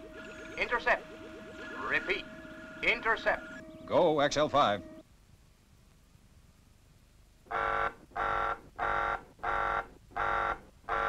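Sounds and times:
alarm buzzer pulses: 0.0 - 5.0, 7.5 - 11.0.

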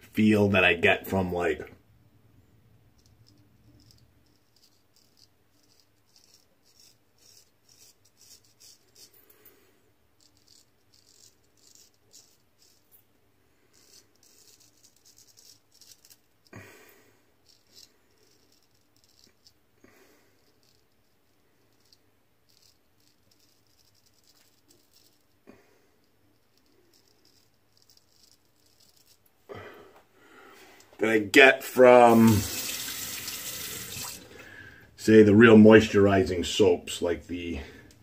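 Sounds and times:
razor scraping stubble: 3.8 - 9.1, 10.2 - 12.9, 31.4 - 34.3.

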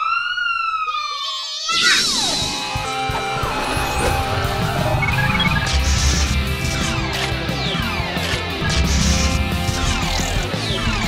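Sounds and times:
toy police siren wail: 0.0 - 2.0
music: 1.9 - 11.0
whoosh: 2.5 - 7.4.

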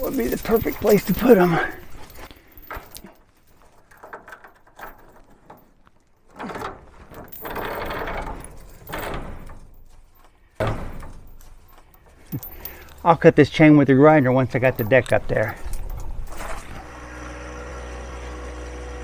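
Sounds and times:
steel chain rattling and clinking: 0.0 - 16.8.

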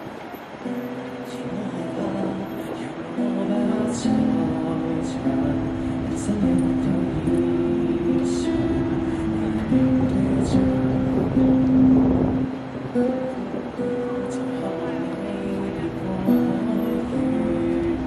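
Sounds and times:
acoustic guitars playing: 0.0 - 18.0
man singing into microphone: 1.0 - 18.0.

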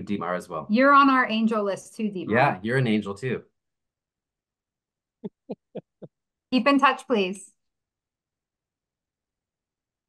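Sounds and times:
person laughing: 5.2 - 6.1.

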